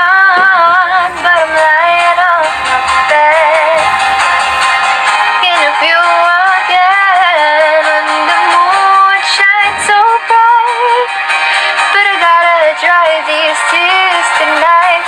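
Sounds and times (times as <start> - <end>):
woman singing with vibrato: 0.0 - 11.2, 11.8 - 15.0
light backing track: 0.0 - 15.0.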